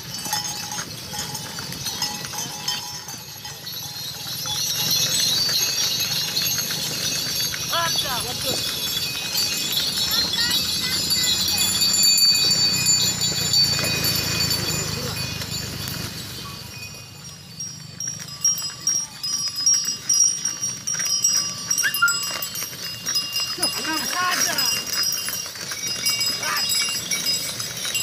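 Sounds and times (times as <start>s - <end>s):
cart and hooves rumbling: 0.0s - 28.0s.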